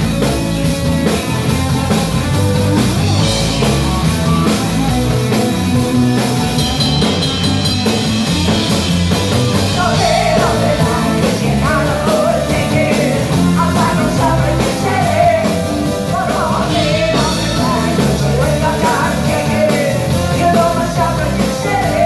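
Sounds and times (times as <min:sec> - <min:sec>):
live rock band playing: 0:00.0 - 0:22.0
woman singing lead vocal: 0:09.7 - 0:22.0.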